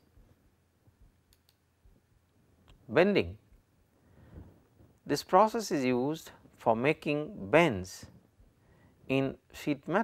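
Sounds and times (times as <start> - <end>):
faint clicks: 1.3 - 1.6.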